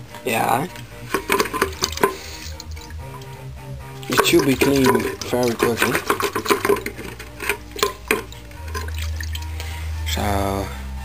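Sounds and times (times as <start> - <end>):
parts swished in fluid: 1.1 - 3.4, 4.0 - 9.6
splashes and clinks: 1.1 - 3.4, 4.0 - 9.6.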